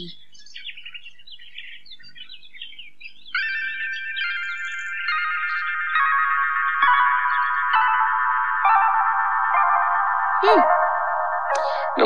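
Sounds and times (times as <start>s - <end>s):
small birds twittering: 0.0s - 12.0s.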